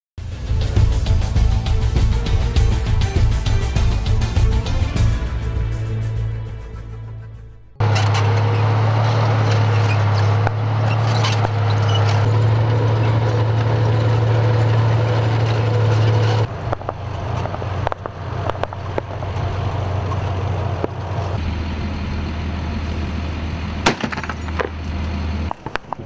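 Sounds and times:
heavy vehicle engines droning: 0.2s - 26.0s.

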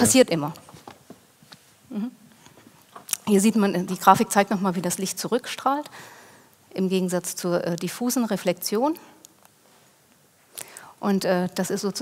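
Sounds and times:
woman speaking: 0.0s - 0.6s, 3.2s - 5.9s, 6.7s - 9.0s, 11.0s - 12.0s
woman breathing softly: 5.9s - 6.5s.

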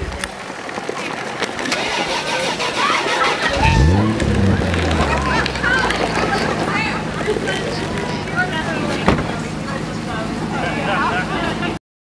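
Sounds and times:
car engine starting and running: 1.7s - 10.8s.

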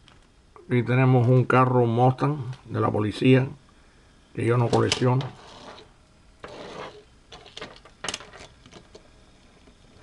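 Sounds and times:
toy car rubbing on wood: 5.3s - 7.0s.

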